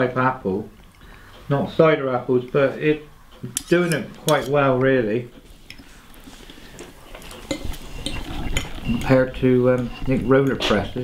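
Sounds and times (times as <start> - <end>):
man speaking: 1.5 - 5.4, 8.9 - 11.0.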